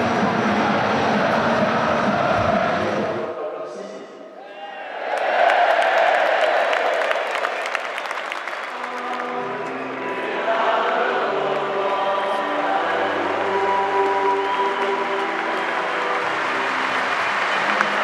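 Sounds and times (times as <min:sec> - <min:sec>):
stadium crowd clapping: 0:05.0 - 0:18.0.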